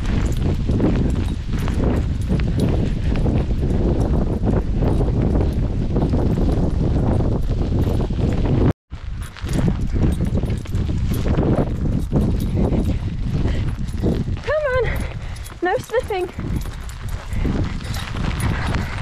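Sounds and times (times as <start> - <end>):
running footsteps on wet tarmac: 0.0 - 19.0
wind noise on microphone: 0.0 - 19.0.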